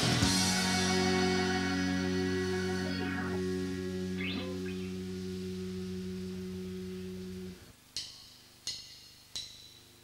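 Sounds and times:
band holding low chord: 0:00.0 - 0:07.7.

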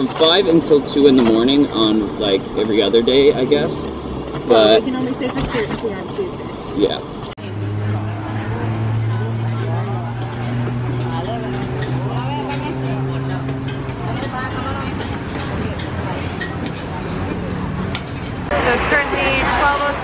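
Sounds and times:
voices chattering: 0:00.0 - 0:20.0.

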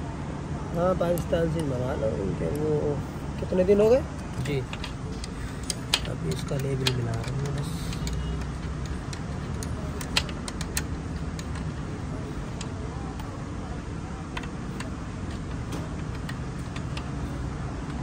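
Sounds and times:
steady low hum: 0:00.0 - 0:18.0
spanner clicking on metal bolt: 0:04.2 - 0:11.8.

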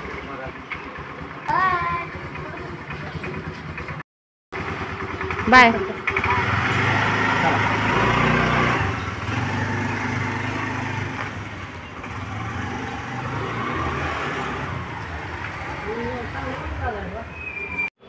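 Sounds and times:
scooter engine pulling away: 0:00.0 - 0:04.0, 0:04.6 - 0:17.8.

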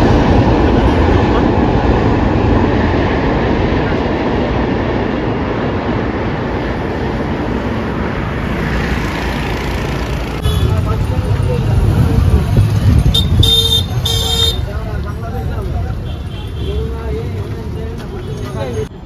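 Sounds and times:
train rumbling on rails: 0:00.0 - 0:19.0.

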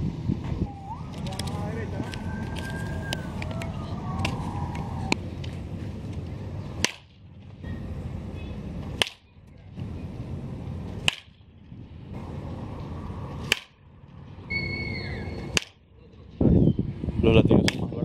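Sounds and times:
bat cracking on ball: 0:04.2 - 0:05.2, 0:06.8 - 0:07.3, 0:08.8 - 0:09.3, 0:11.0 - 0:11.5, 0:13.4 - 0:13.8, 0:15.5 - 0:15.8.

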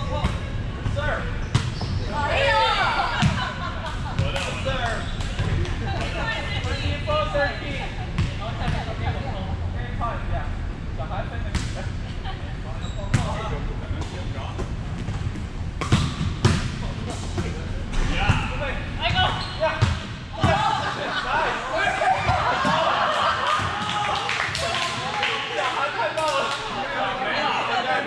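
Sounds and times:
players' voices: 0:00.0 - 0:15.4, 0:16.0 - 0:28.0.

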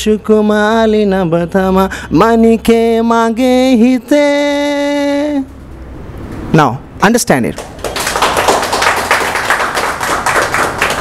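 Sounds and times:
crowd applauding: 0:07.6 - 0:11.0.

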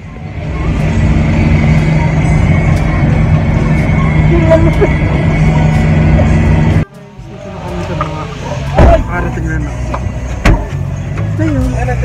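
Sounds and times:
van engine and road noise: 0:00.0 - 0:12.0.

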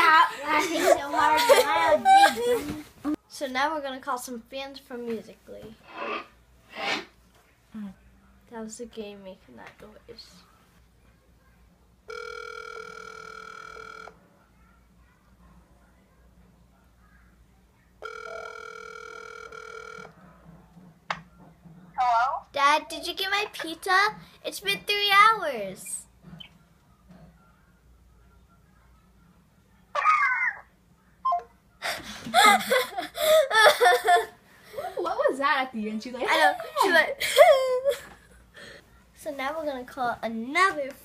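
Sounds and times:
laughter: 0:00.6 - 0:02.7, 0:31.9 - 0:34.9, 0:37.2 - 0:38.4
phone ringback tone: 0:12.1 - 0:14.2, 0:18.0 - 0:20.2.

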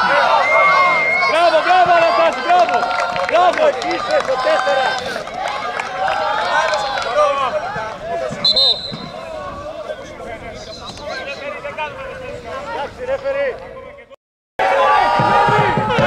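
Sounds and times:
referee's whistle blast: 0:08.4 - 0:09.2.

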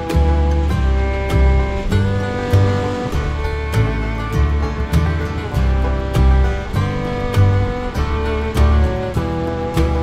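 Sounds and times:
guitar-led music with bass: 0:00.0 - 0:10.0.

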